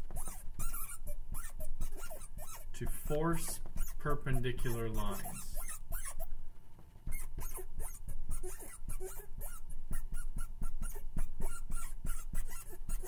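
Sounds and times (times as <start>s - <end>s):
marker squeaking on a board: 0.0s - 6.4s, 7.0s - 13.0s.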